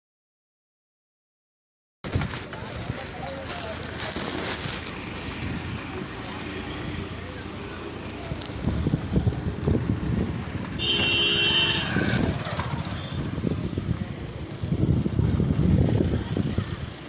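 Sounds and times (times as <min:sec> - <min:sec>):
bicycle rumble on road: 0:02.0 - 0:17.0
wind buffeting microphone: 0:08.0 - 0:17.0
horn steady tone: 0:10.8 - 0:12.1.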